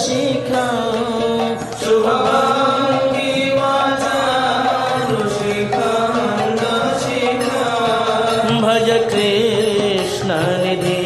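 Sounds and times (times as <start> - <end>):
devotional hymn chanting: 0.0 - 11.0
musical accompaniment: 0.0 - 11.0.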